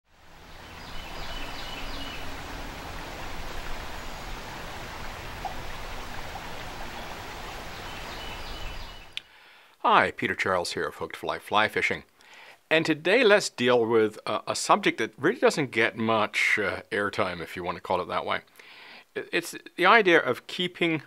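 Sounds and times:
creek water rushing over riffle: 0.1s - 9.2s
faint bird chirps: 0.6s - 2.4s, 5.4s - 9.3s.

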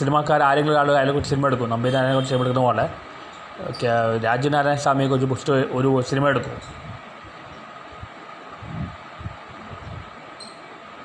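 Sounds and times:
man speaking: 0.0s - 3.0s, 3.6s - 6.7s.

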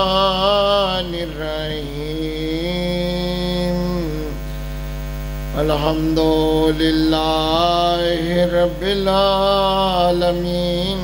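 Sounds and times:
man chanting through microphone: 0.0s - 4.7s, 5.4s - 11.0s
electrical mains hum: 0.0s - 11.0s.

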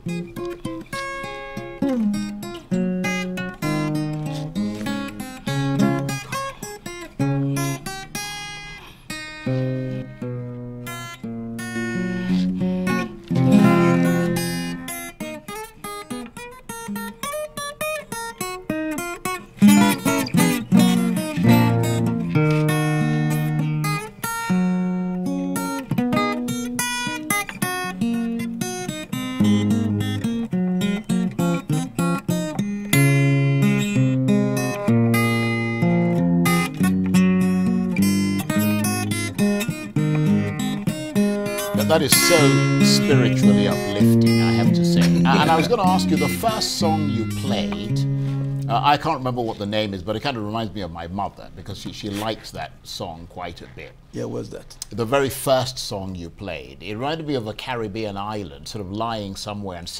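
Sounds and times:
fingerstyle acoustic guitar: 0.0s - 49.9s, 51.8s - 52.5s.

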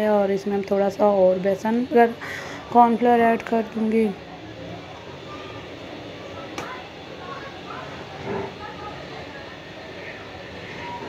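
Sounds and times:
faint voices: 0.6s - 11.0s.

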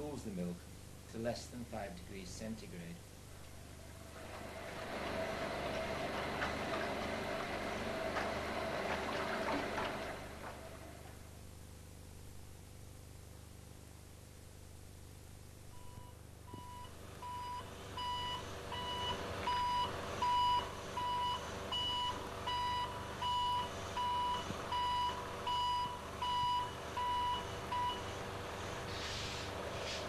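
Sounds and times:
reversing alarm beeping: 16.6s - 28.1s
short hiss: 28.8s - 30.0s.

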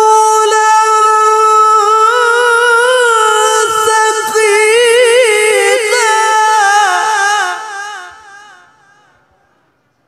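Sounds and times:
man reciting melodically: 0.0s - 8.9s.

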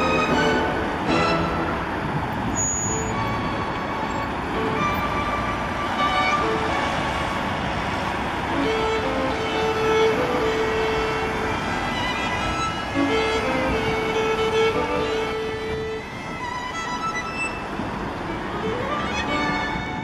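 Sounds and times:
cars and vans passing: 0.0s - 20.0s.

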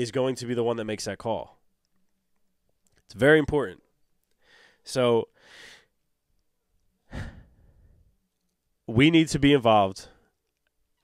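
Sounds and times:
man breathing into microphone: 7.1s - 8.1s
man speaking: 8.9s - 10.2s.

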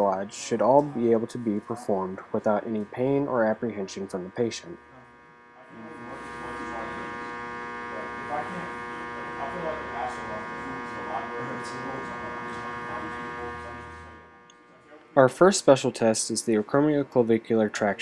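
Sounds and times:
faint voices: 0.0s - 18.0s
steady electrical buzz: 0.0s - 18.0s.

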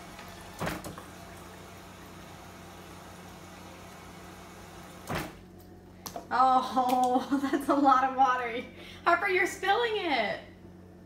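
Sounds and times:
water stream filling a cup: 0.0s - 5.0s.

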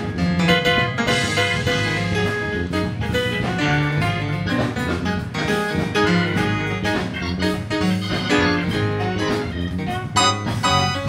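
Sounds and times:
band playing with steady beat: 0.0s - 11.0s.

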